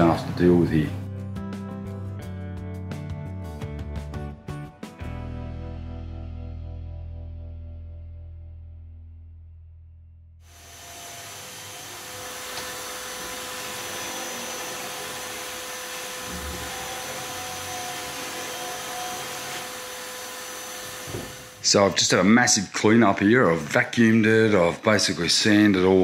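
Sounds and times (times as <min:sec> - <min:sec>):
music: 0:00.0 - 0:10.5
electric sander on plywood: 0:10.5 - 0:21.8.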